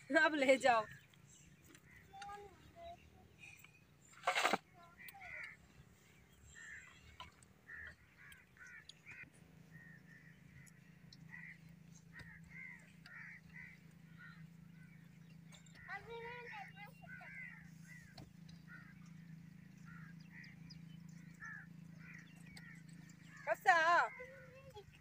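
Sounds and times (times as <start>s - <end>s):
birds chirping: 0.0s - 25.0s
low steady hum: 0.0s - 25.0s.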